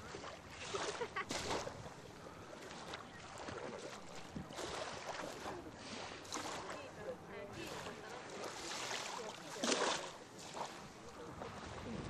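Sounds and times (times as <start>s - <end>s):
small waves washing onto sand: 0.0s - 12.0s
people talking faintly: 2.6s - 12.0s.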